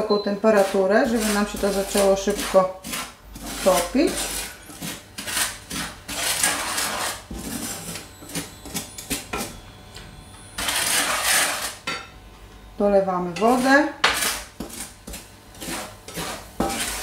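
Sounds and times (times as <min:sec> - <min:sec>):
spatula scraping sugar in pan: 0:00.0 - 0:09.6, 0:10.4 - 0:12.0, 0:13.3 - 0:17.0.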